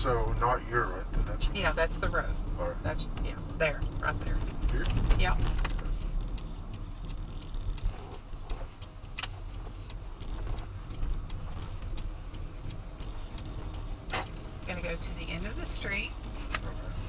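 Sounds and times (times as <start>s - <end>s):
car turn signal ticking: 0.0s - 17.0s
engine and road noise: 0.0s - 17.0s.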